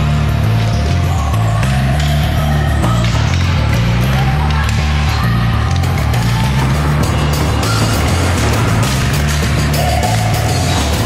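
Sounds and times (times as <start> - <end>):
loud music with bass line: 0.0 - 11.0.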